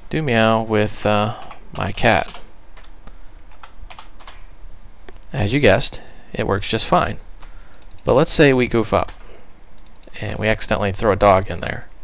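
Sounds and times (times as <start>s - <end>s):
keyboard keys typing: 1.4s - 2.9s, 3.5s - 4.4s, 7.0s - 8.1s, 9.0s - 10.5s.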